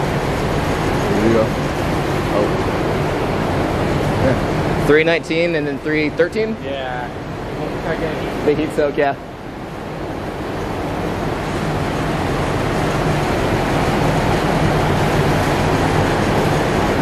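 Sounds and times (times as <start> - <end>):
large fan rushing air: 0.0 - 17.0.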